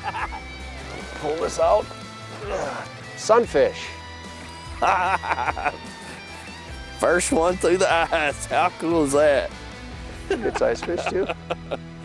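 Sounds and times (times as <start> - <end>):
man laughing: 0.0 - 0.5, 4.8 - 5.9, 10.2 - 11.9
background guitar music: 0.0 - 12.0.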